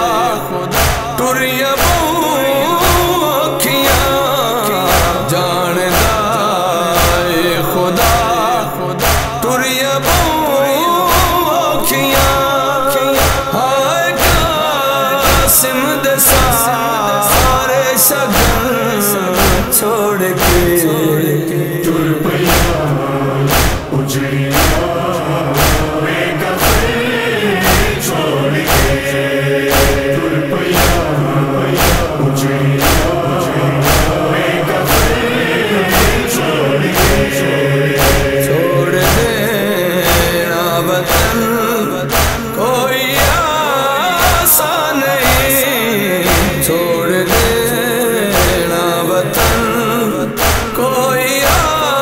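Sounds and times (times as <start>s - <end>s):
steady percussive beat: 0.0s - 51.9s
men chanting in chorus: 0.0s - 52.0s.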